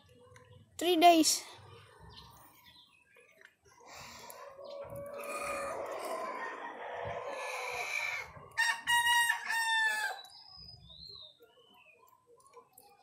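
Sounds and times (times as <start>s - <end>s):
roosters crowing: 4.1s - 10.3s.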